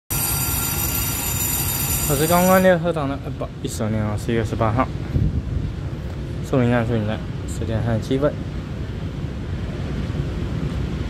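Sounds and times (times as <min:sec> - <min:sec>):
high steady whining tones: 0:00.0 - 0:02.9
train interior low rumble: 0:02.7 - 0:11.0.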